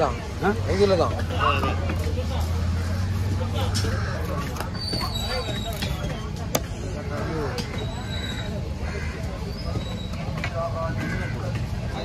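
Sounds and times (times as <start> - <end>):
low rumble of outdoor noise: 0.0 - 12.0
voices talking: 0.0 - 12.0.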